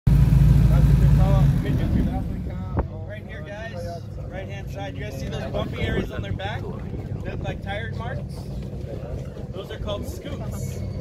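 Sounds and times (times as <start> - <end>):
airboat engine and propeller: 0.1 - 11.0.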